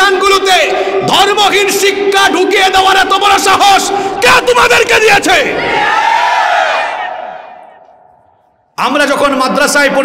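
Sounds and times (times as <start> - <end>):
man shouting through loudspeaker: 0.0 - 5.7.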